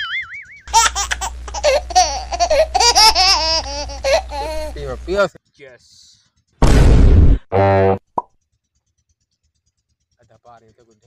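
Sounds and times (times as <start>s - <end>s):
high-pitched comedy laughter: 0.0s - 4.8s
steady low hum: 0.6s - 5.4s, 6.6s - 7.9s.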